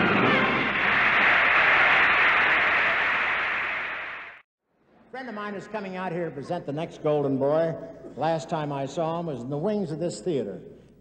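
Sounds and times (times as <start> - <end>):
audience applauding: 0.0 - 4.4.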